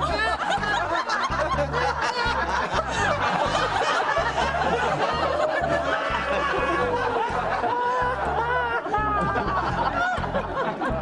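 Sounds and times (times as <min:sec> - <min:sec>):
people laughing: 0:00.0 - 0:11.0
upbeat music with bass beat: 0:00.0 - 0:11.0.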